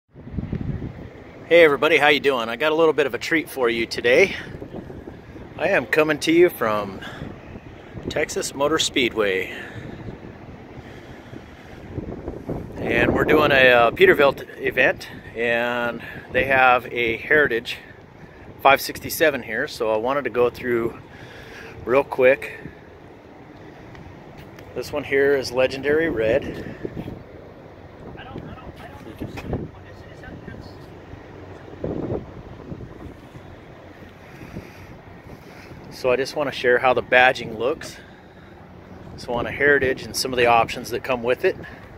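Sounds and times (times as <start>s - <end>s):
wind buffeting microphone: 0.1s - 41.9s.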